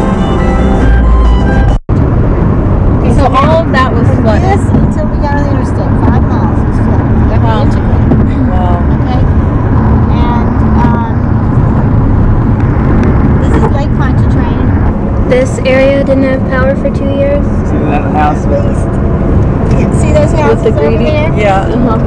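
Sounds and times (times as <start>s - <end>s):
car road and engine rumble: 0.0s - 22.0s
indistinct talking: 3.0s - 11.8s, 19.6s - 22.0s.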